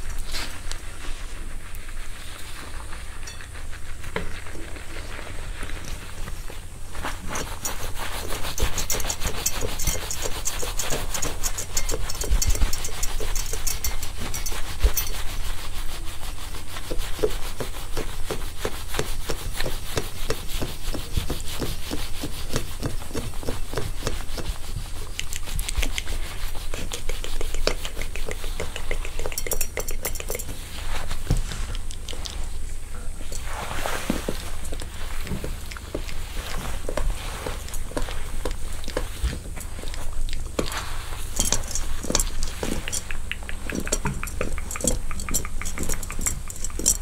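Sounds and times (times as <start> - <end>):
fingers scratching wig hair: 0.0 - 47.0
wire scalp massager scratching: 2.2 - 47.0.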